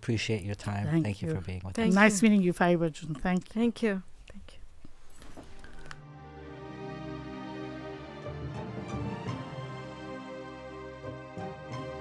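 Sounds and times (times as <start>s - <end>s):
soft music: 5.9s - 12.0s.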